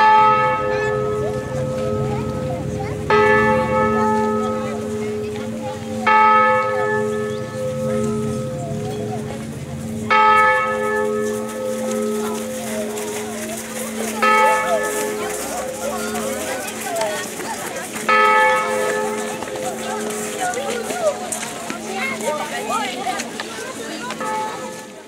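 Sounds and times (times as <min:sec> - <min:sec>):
church bell tolling: 0:00.0 - 0:22.8, 0:24.0 - 0:25.0.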